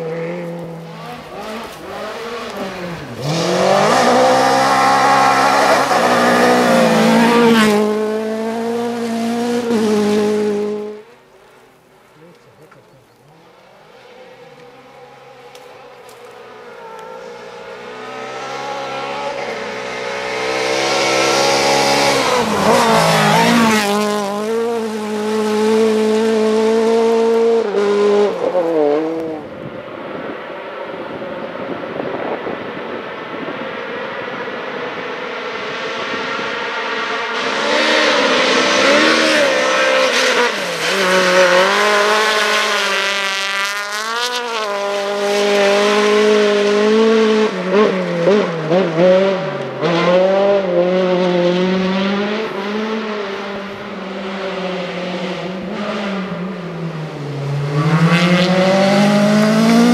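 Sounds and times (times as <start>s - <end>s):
rally car engine revving: 0.0s - 11.1s, 12.6s - 30.2s, 30.9s - 59.9s
rally car passing: 0.0s - 11.6s, 13.3s - 59.9s
rally car approaching: 0.0s - 59.9s.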